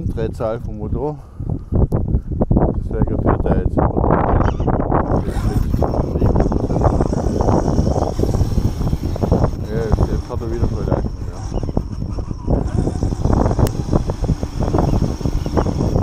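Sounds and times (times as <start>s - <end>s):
wind rumbling on microphone: 0.0s - 16.0s
high electric motor whine: 4.9s - 16.0s.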